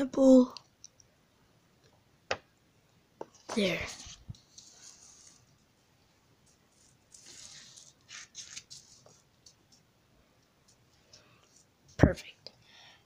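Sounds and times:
paper rustling and sliding: 0:03.6 - 0:05.7, 0:06.6 - 0:09.3
quick paper scrapes: 0:03.9 - 0:05.5, 0:07.1 - 0:09.0.

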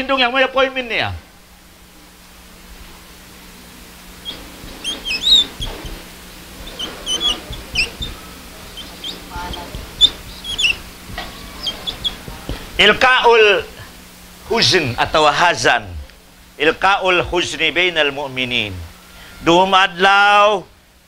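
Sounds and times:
marker squeaking on whiteboard: 0:04.2 - 0:13.0.

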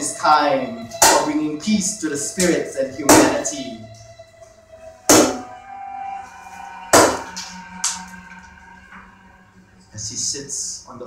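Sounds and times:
hard strikes on resonant object: 0:00.9 - 0:01.6, 0:02.4 - 0:03.7, 0:06.9 - 0:08.1.

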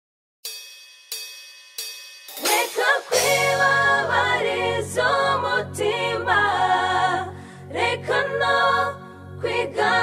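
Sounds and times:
cymbal-like strikes ringing: 0:00.4 - 0:04.1.

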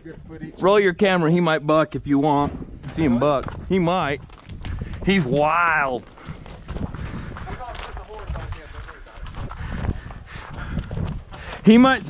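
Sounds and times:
hoof steps on gravel: 0:02.5 - 0:12.0.

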